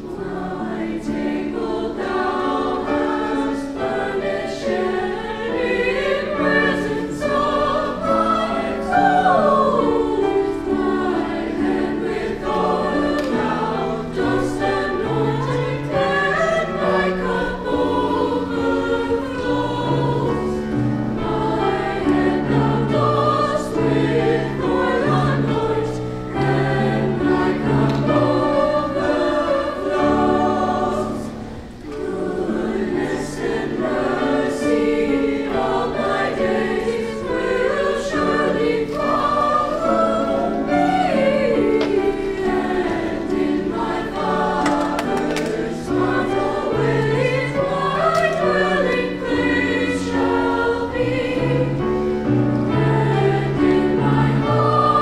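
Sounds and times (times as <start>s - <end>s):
mixed choir singing: 0.0s - 55.0s.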